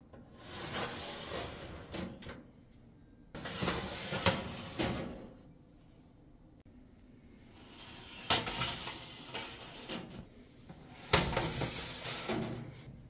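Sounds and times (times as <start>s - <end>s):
wire trays scraping on rails: 0.4s - 2.3s, 7.6s - 10.3s, 10.9s - 12.9s.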